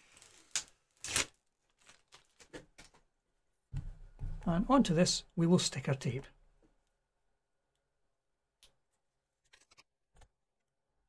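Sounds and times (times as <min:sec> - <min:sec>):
plastic film rustling: 0:00.0 - 0:03.0.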